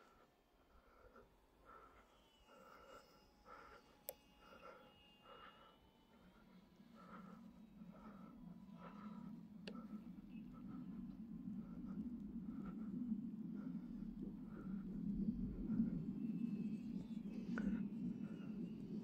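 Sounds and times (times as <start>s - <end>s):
distant electric motors whining: 0.0s - 19.0s.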